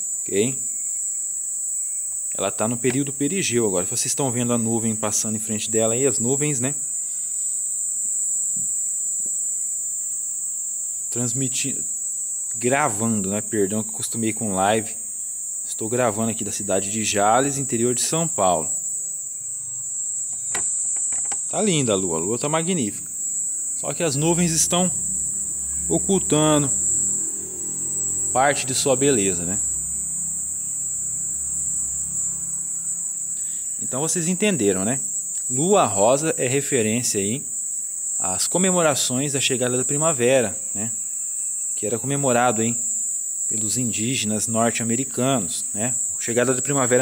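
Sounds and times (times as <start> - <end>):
crickets chirping: 0.0 - 47.0
faint low hum: 0.0 - 47.0.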